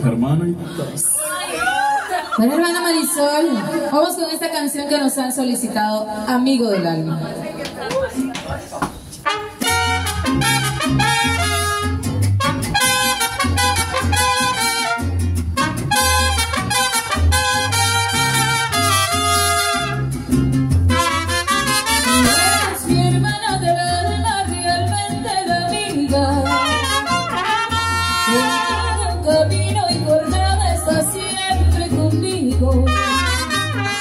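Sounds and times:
trumpets playing melody: 9.2 - 20.3, 20.9 - 23.2, 26.4 - 29.2, 32.8 - 34.0
strummed guitars: 9.2 - 34.0
bass guitar thumping: 9.6 - 28.1.

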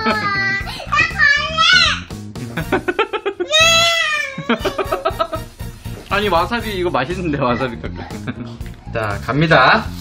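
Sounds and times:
girl crying: 0.0 - 2.0, 3.4 - 5.2
background music: 0.0 - 10.0.

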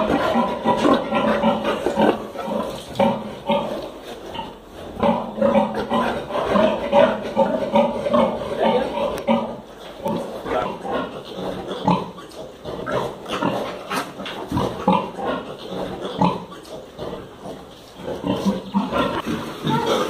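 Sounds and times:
pigs grunting: 0.0 - 20.0.

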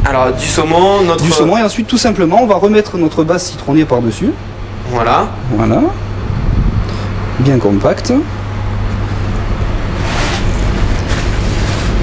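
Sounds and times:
ventilation humming: 0.0 - 12.0
handling noises at counter: 10.0 - 12.0.

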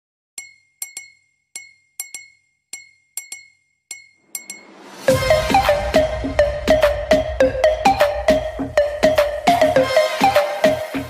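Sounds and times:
glass clinking rhythmically: 0.4 - 4.8.

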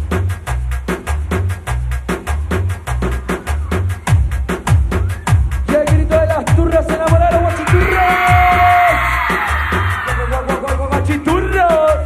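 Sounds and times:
heavy bass beat: 0.0 - 12.0
live band music: 0.0 - 12.0.

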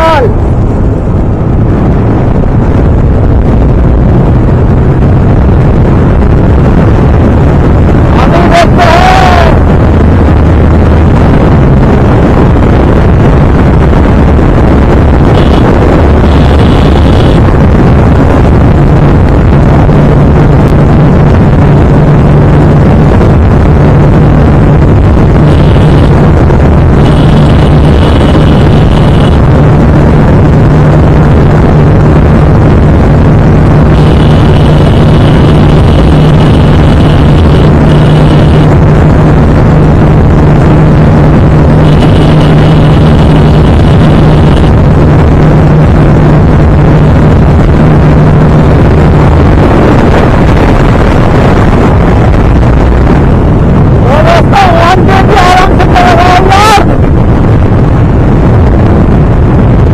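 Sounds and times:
motorcycle engine running hard: 0.0 - 59.9
wind rush on microphone: 0.0 - 59.9.

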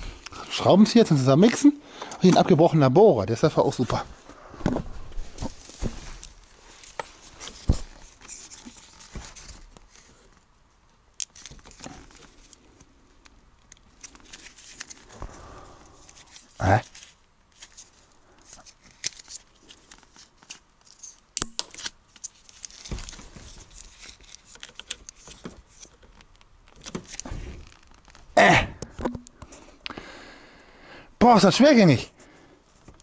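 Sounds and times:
plastic tube clicks and crinkling: 11.2 - 15.1, 16.1 - 30.0.

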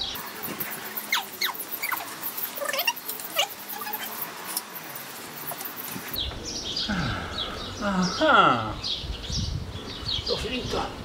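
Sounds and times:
brush scrubbing metal sprocket: 0.2 - 6.2.

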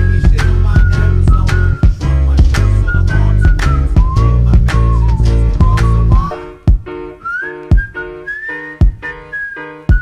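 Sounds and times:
hip-hop beat: 0.0 - 10.0
whistle-like lead melody: 0.0 - 10.0
kick drum hits: 3.5 - 4.8, 5.4 - 7.1, 7.7 - 8.0, 8.8 - 9.1.

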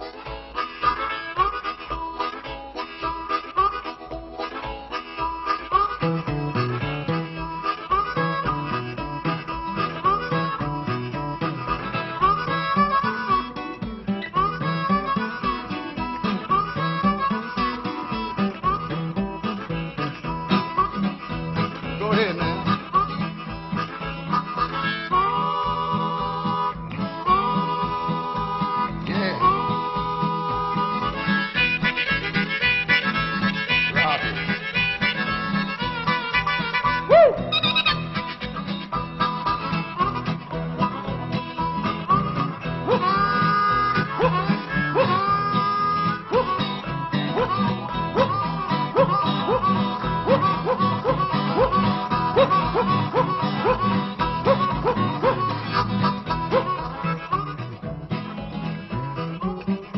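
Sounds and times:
acoustic guitar low notes: 0.0 - 59.9
blues harmonica playing: 0.0 - 59.9.

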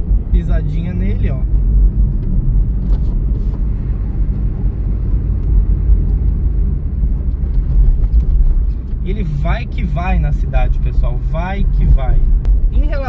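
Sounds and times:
car engine low rumble: 0.0 - 13.0
road noise: 0.0 - 13.0.

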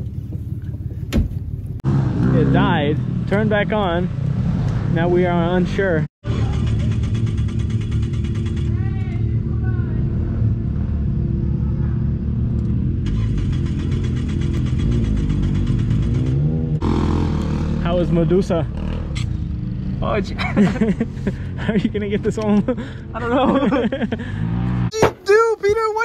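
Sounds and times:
rapid even engine pulsing: 22.6 - 24.9.

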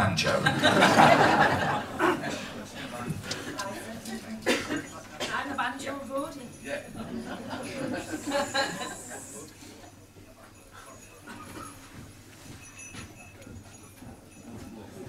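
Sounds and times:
low room murmur: 0.0 - 15.0.

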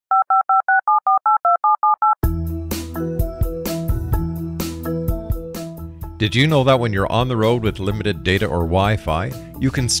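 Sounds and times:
telephone keypad beeps: 0.1 - 2.2.

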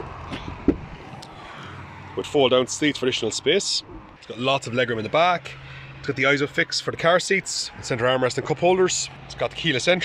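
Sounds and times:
outdoor background noise: 0.0 - 10.0.

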